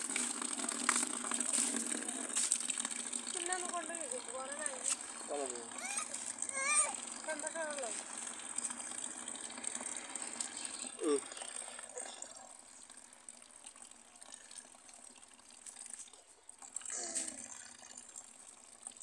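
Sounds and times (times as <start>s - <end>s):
water splashing into plastic bucket: 0.0s - 12.3s.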